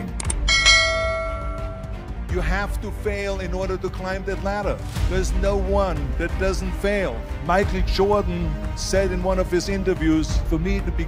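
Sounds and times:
low background music: 0.0s - 11.0s
bell-like chime: 0.5s - 2.1s.

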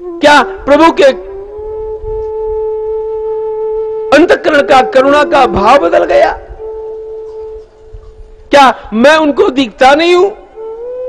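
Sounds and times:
person speaking: 0.2s - 1.4s, 4.1s - 6.6s, 8.5s - 10.6s.

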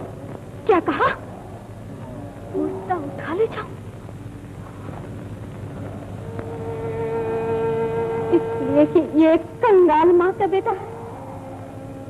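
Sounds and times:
old film soundtrack hiss and hum: 0.0s - 12.0s.

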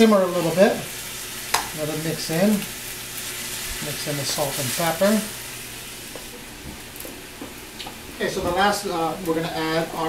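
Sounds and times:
meat sizzling in a frying pan: 0.0s - 10.0s.

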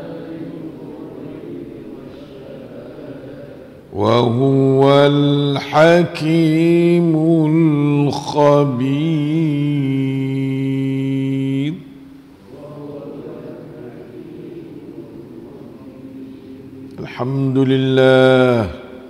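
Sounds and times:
man chanting into a microphone: 3.9s - 12.8s, 15.5s - 19.0s.

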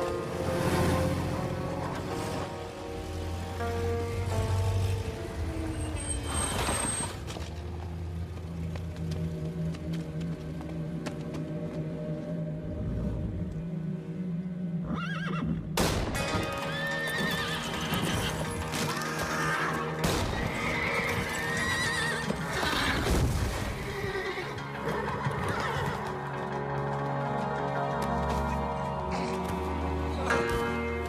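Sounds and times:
film music with held tones: 0.0s - 31.0s
hooves clattering: 7.2s - 12.3s, 16.2s - 31.0s
horses whinnying: 14.8s - 15.6s, 16.6s - 26.3s.

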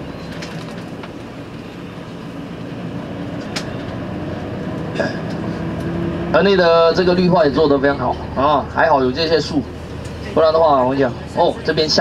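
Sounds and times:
bus engine hum and road noise: 0.0s - 12.0s.

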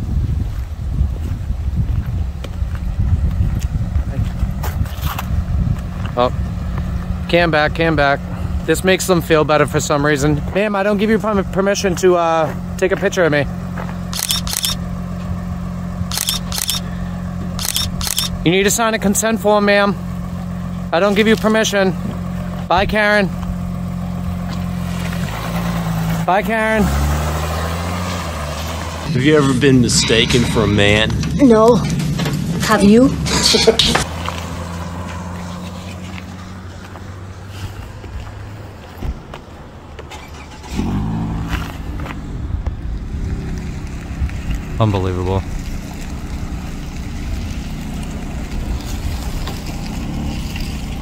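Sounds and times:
wind buffeting microphone: 0.0s - 7.2s
car engine humming: 0.0s - 51.0s.

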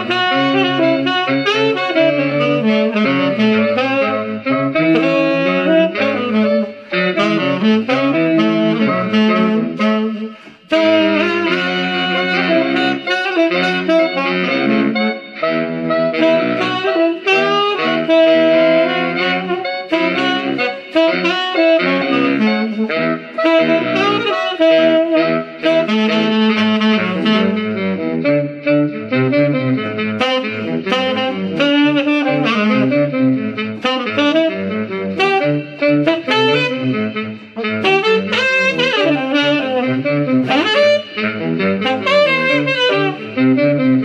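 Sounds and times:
tenor saxophone playing: 0.0s - 44.0s.

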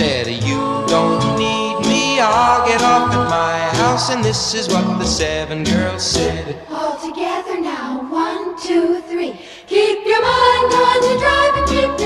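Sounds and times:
pop band playing: 0.0s - 6.6s, 10.3s - 12.0s
girls singing in chorus: 0.5s - 2.0s, 6.7s - 12.0s.

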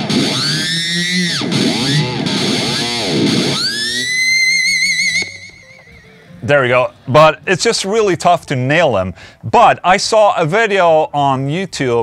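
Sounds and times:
distorted electric guitar squeals: 0.0s - 7.0s.

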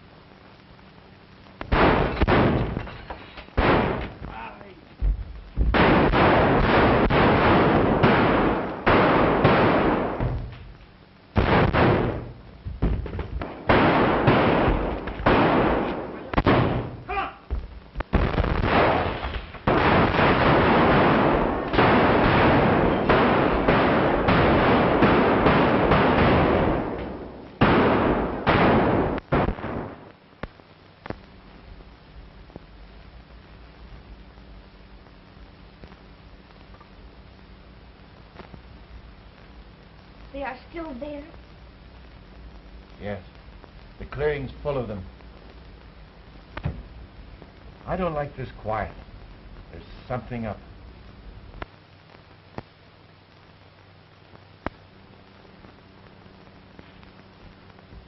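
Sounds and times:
volleys of gunfire: 1.7s - 3.0s, 3.6s - 4.4s, 5.6s - 10.5s, 11.3s - 17.1s, 18.1s - 30.1s
explosions: 1.7s - 10.7s, 11.3s - 30.1s.

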